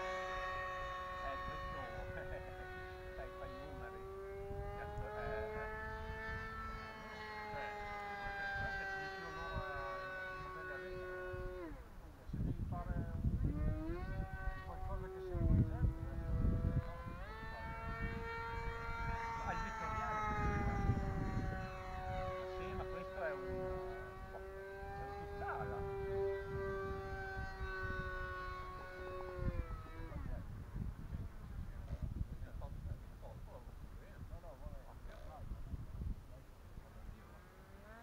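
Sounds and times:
electric model plane whining: 0.0 - 38.0
wind rumbling on microphone: 0.0 - 38.0.

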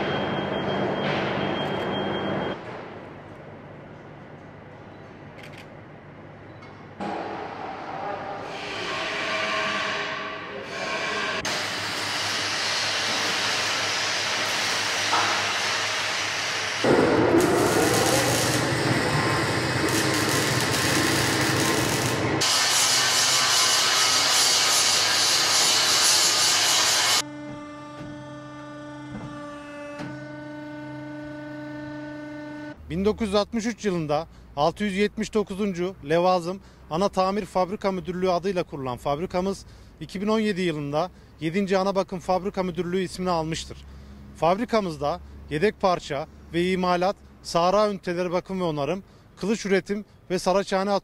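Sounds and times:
machinery and metalworking noise: 0.0 - 28.3
machine hum: 6.8 - 32.9.

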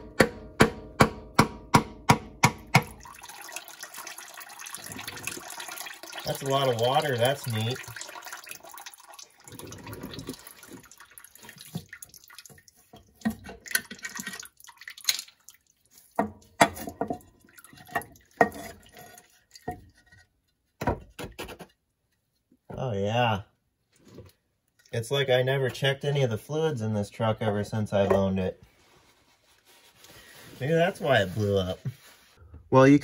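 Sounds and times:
liquid splashing into a pan: 2.7 - 19.9.

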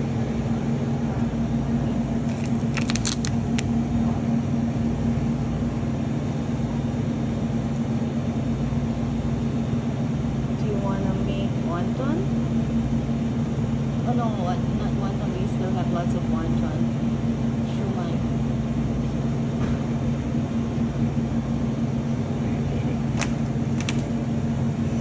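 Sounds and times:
refrigerated display case humming: 0.0 - 25.0.

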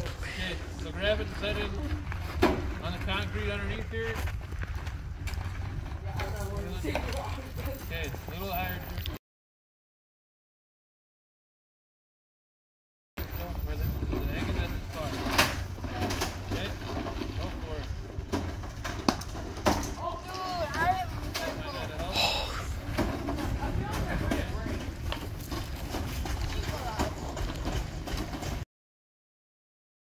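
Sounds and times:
wind rumbling on microphone: 0.0 - 8.3, 13.2 - 15.8, 20.5 - 28.6
distant voices calling out: 19.5 - 28.1.

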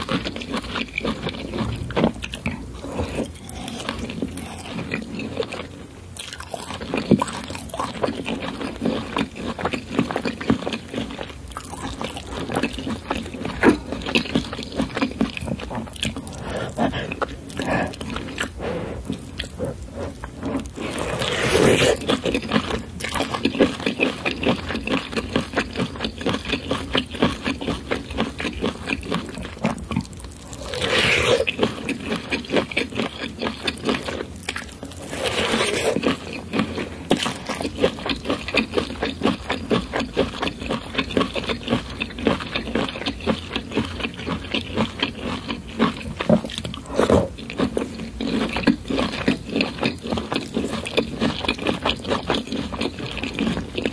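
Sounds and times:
wet chewing and mouth smacking: 0.0 - 53.9.

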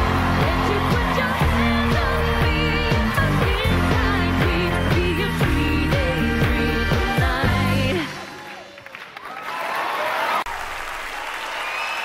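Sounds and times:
audience applauding: 0.0 - 4.3, 8.2 - 12.0.

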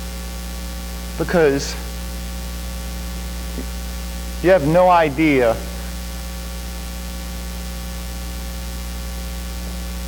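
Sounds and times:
constant hiss: 0.0 - 10.0
electrical mains hum: 0.0 - 10.0.

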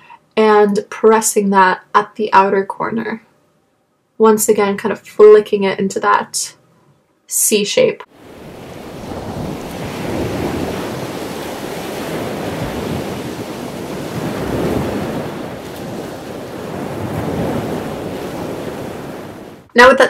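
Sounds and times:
rushing noise like surf: 8.1 - 19.7.

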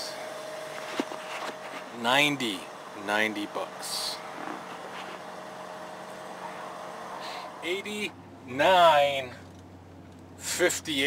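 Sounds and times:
truck cab hum: 0.0 - 11.0.

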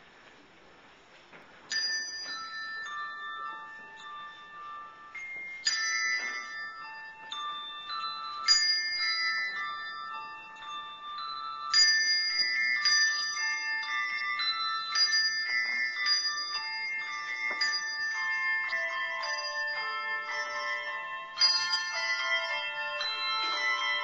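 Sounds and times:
handbell choir playing: 1.7 - 24.0.

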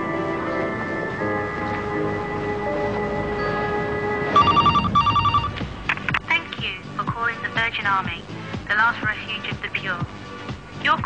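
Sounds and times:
sustained music chords: 0.0 - 6.1
telephone ringing: 2.7 - 5.7.

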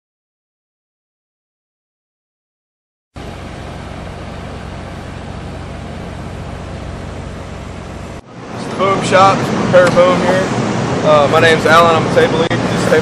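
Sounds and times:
low outdoor rumble: 3.2 - 13.0.

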